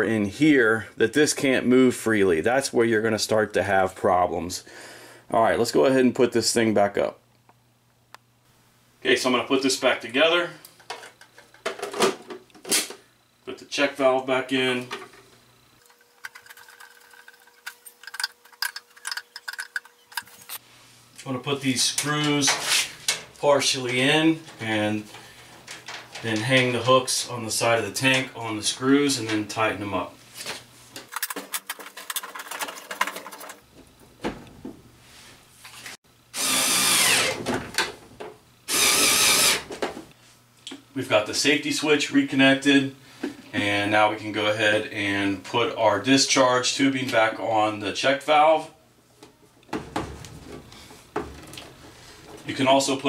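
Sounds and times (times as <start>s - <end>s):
plastic parts clicking together: 31.0s - 33.6s
cordless drill driving screws: 36.4s - 37.4s, 38.7s - 39.7s.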